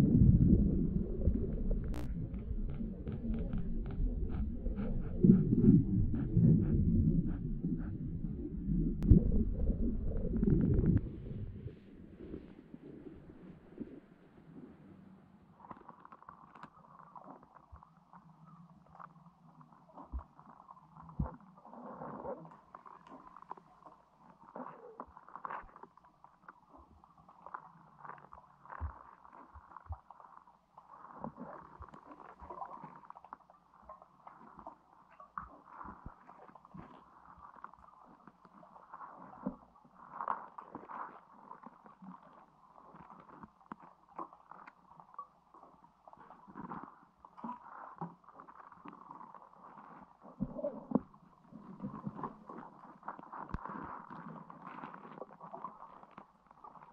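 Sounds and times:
muffled underwater gurgling: 0.0 - 14.8.

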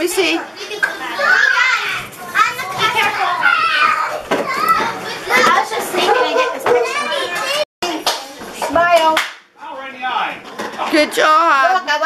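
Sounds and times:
children talking and calling out: 0.4 - 9.0.

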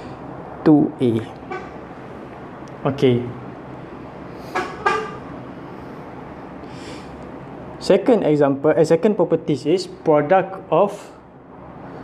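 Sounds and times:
recording hiss: 0.0 - 11.2.

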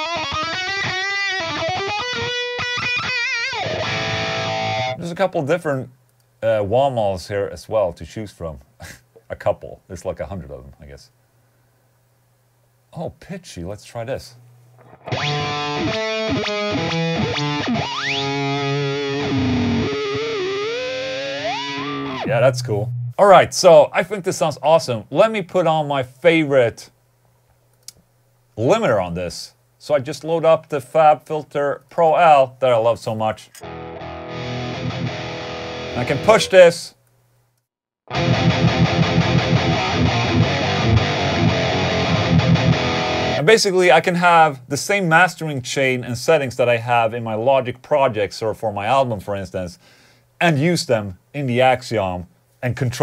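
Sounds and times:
distorted electric guitar notes: 0.0 - 5.0, 14.8 - 23.2, 33.6 - 36.7, 38.1 - 43.4.

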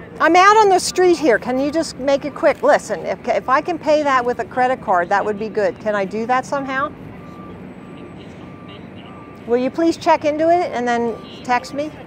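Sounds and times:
low traffic rumble: 0.0 - 12.0
faint high beeps: 6.6 - 10.0, 10.8 - 12.0.

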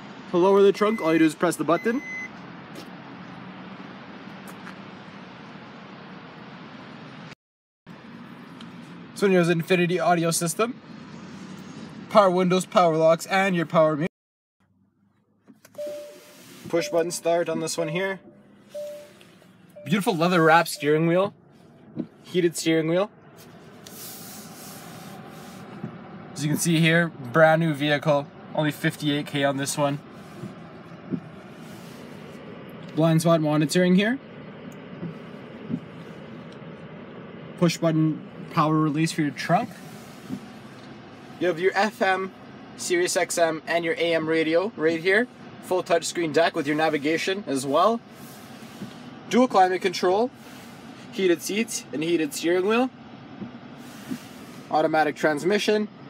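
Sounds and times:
short warning beep: 0.8 - 2.3, 15.7 - 19.2, 19.8 - 21.1
car engine idling hiss: 15.6 - 56.0.

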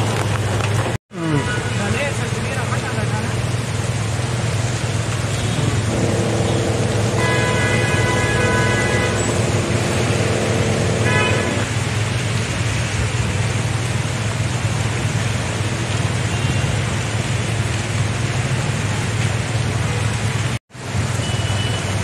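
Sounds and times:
rain falling on flooded road: 0.0 - 22.0
wet traffic: 0.0 - 22.0.

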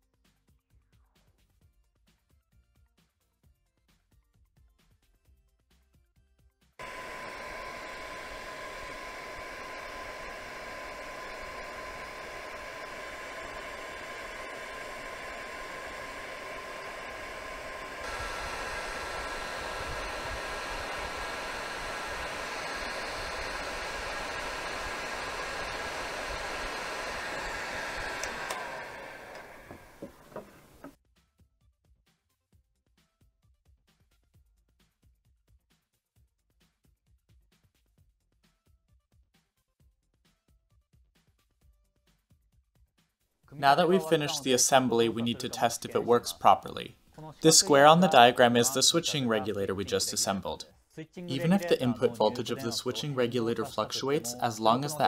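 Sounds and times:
heat gun blowing with fan whine: 6.8 - 30.9, 43.6 - 46.8, 47.4 - 50.6, 51.3 - 55.0.

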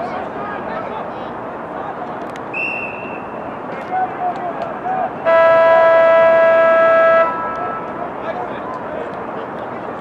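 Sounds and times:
horn blowing steady note: 5.2 - 7.9.

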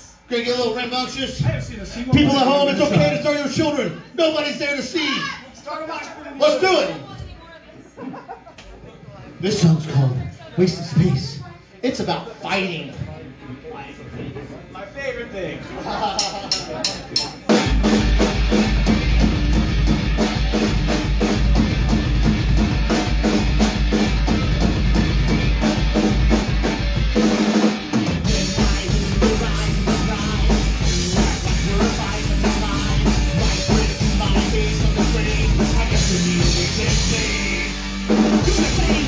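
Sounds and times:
drum hits: 16.8 - 39.0
punk rock band playing: 17.4 - 39.0.

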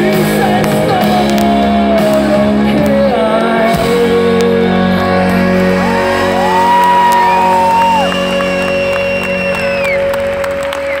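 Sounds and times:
live rock band with brass: 0.0 - 11.0
crowd shouts and whoops: 5.6 - 11.0.

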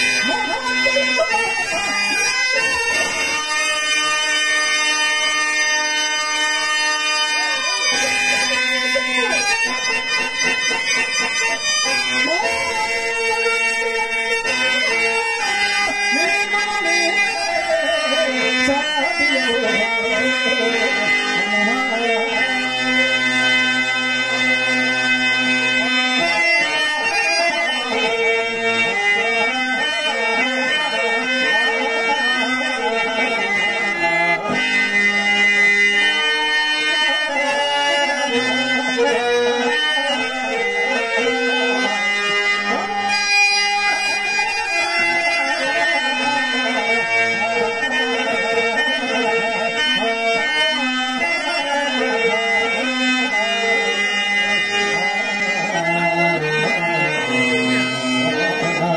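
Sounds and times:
harmonium drone: 0.0 - 58.9.

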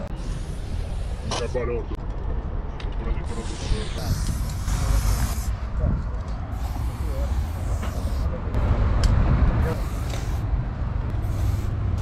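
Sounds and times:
steady low rumble: 0.0 - 12.0
spray paint can hissing: 3.3 - 5.6, 6.5 - 8.4, 9.6 - 12.0.

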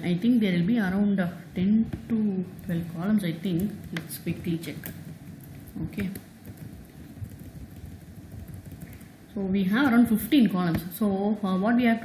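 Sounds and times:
low background rumble: 0.0 - 11.7.

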